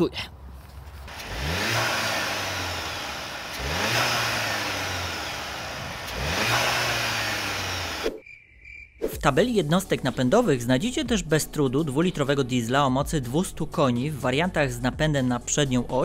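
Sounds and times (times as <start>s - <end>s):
car engine revving: 1.1s - 8.2s.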